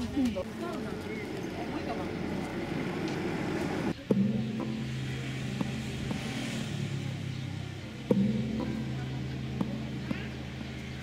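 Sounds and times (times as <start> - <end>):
voices at a market stall: 0.0 - 6.0, 6.7 - 11.0.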